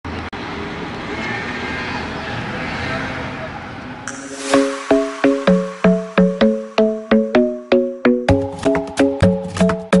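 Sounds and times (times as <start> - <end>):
road traffic: 0.0 - 8.2.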